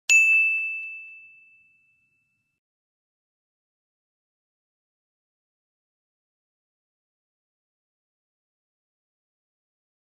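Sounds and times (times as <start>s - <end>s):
high bell-like ding: 0.1s - 2.6s.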